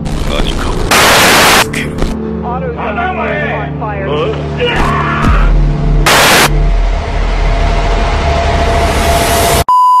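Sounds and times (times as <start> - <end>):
burst of static noise: 0.0 - 2.2, 6.0 - 6.8
harsh noisy rush: 0.0 - 2.2, 5.3 - 9.6
low rumble: 5.3 - 9.6
electronic beep tone: 9.7 - 10.0.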